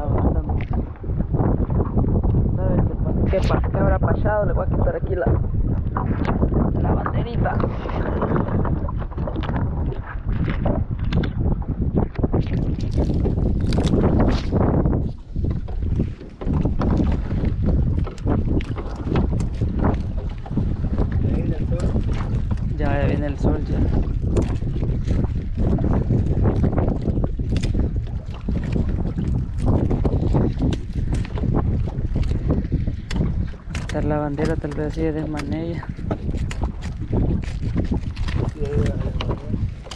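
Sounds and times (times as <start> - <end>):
steady low rumble: 0.0 - 39.9
wind buffeting microphone: 0.0 - 39.9.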